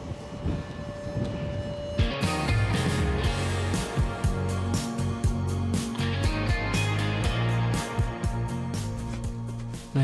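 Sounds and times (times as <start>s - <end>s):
wind rumbling on microphone: 0.0s - 3.2s
steady high tone: 0.0s - 8.2s.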